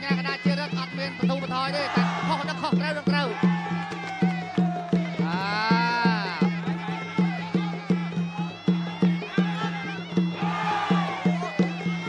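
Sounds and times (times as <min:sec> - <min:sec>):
reedy wind instrument melody: 0:00.0 - 0:12.0
steady drum beat: 0:00.0 - 0:12.0
crowd shouting: 0:01.7 - 0:12.0.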